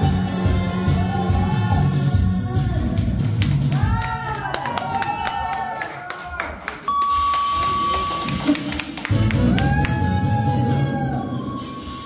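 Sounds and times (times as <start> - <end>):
stage music with heavy beat: 0.0 - 4.6, 7.0 - 12.0
handclaps: 3.0 - 10.0.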